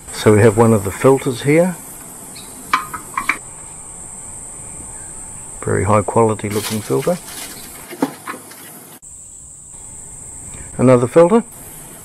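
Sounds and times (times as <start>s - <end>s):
insects chirring: 0.0s - 12.0s
faint handling noise: 6.4s - 8.9s.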